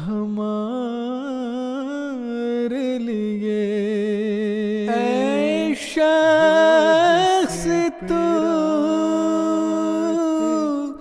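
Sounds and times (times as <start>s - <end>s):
voices humming a long note: 4.9s - 6.0s.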